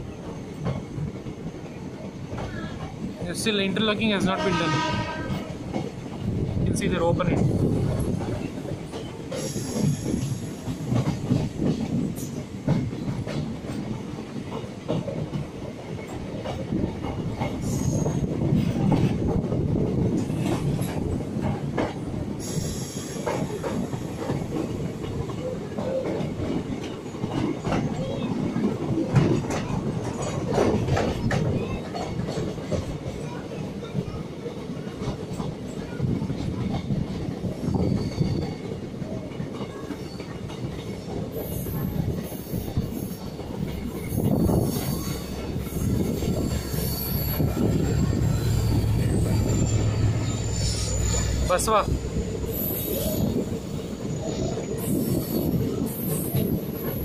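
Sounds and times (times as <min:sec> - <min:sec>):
train wheels rumbling on rail: 0:00.0 - 0:57.0
high wheel squeal: 0:37.7 - 0:38.6, 0:44.4 - 0:57.0.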